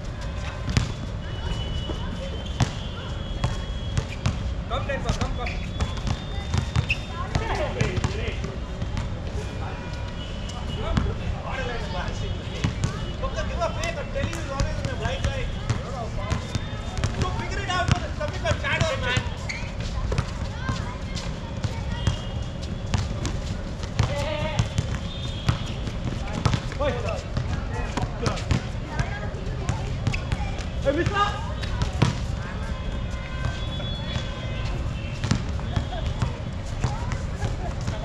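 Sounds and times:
basketball bouncing on hard court: 5.1s - 8.2s, 14.2s - 19.4s, 22.9s - 32.3s, 35.1s - 38.0s.

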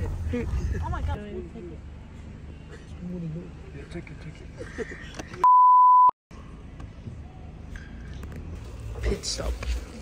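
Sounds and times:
censor bleep: 5.4s - 6.2s.

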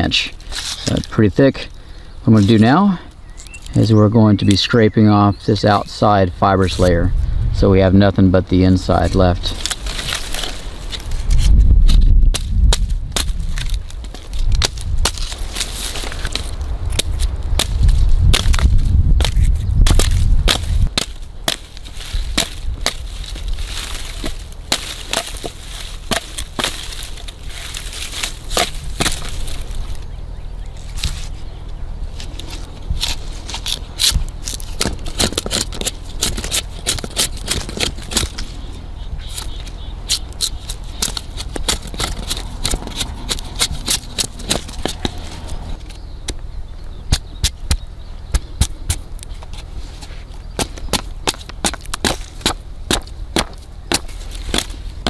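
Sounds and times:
knife scraping plant stalk: 0.4s - 1.1s, 19.2s - 30.0s, 32.2s - 45.8s
fibres cracking: 9.0s - 30.1s, 32.1s - 46.4s, 50.4s - 55.0s.

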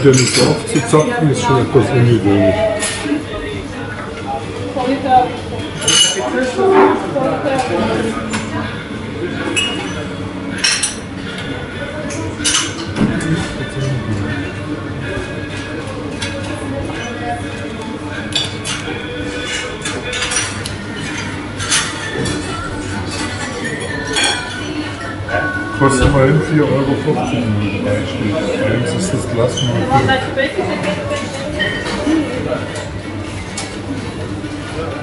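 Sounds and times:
glassware and dishes clinking: 0.0s - 1.9s, 5.6s - 17.6s, 18.2s - 30.2s, 30.8s - 33.8s.

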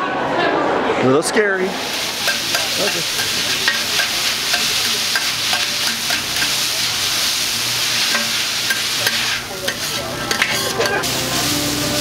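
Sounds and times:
noodles sizzling on griddle: 1.6s - 12.0s
metal spatulas scraping and clicking: 2.2s - 6.6s, 8.0s - 11.1s.

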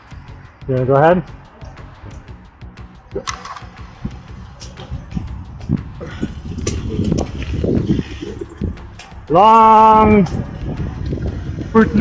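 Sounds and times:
faint background music: 0.0s - 12.0s
bike tyres clicking and knocking: 3.1s - 12.0s
wind rumble on microphone: 3.8s - 12.0s.

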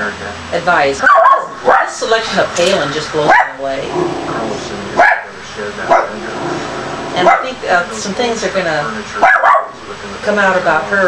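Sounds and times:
low speech: 0.0s - 11.0s
dog barking: 1.0s - 2.0s, 3.3s - 3.7s, 5.0s - 5.3s, 5.9s - 6.2s, 7.2s - 7.6s, 9.2s - 9.8s.

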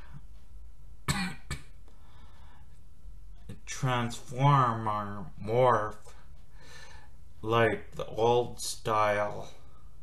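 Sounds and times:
low steady hum: 0.0s - 10.0s
man coughing: 1.1s - 1.8s.

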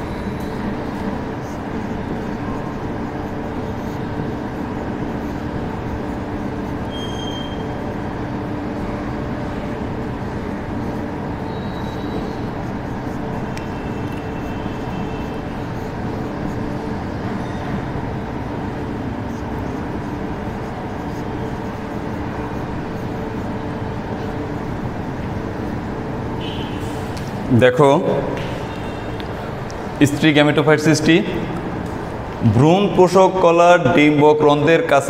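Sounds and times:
mechanical hum and rumble: 0.0s - 35.0s
faint high squeaks: 6.8s - 7.8s.

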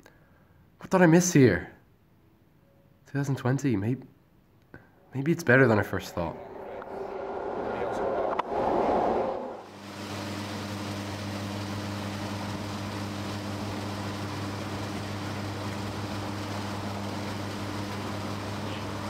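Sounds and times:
low mechanical hum: 4.8s - 19.0s.

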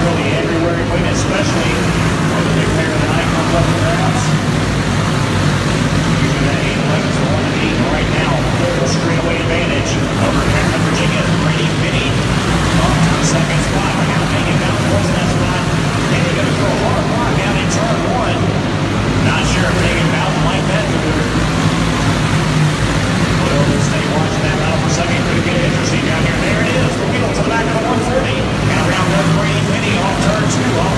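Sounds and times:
kart engines running: 0.0s - 30.9s.

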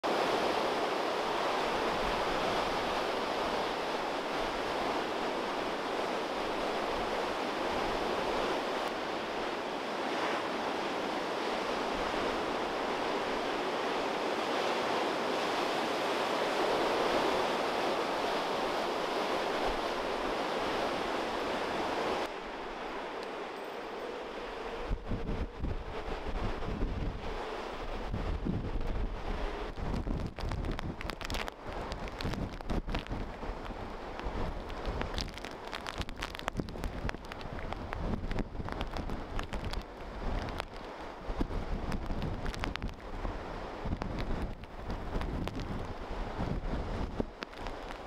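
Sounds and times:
wind blowing: 0.0s - 48.0s
surf breaking on rocks: 28.2s - 48.0s.

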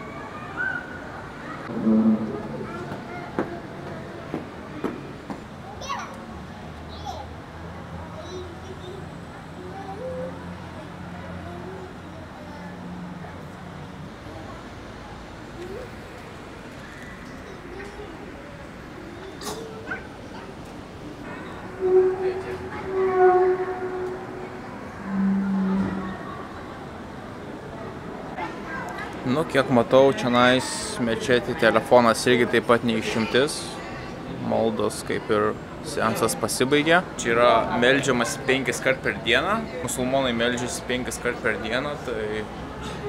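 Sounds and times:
children's voices: 0.0s - 13.6s, 14.2s - 29.2s, 32.8s - 34.4s
short high-pitched squeal: 1.7s - 3.4s, 21.3s - 26.3s.

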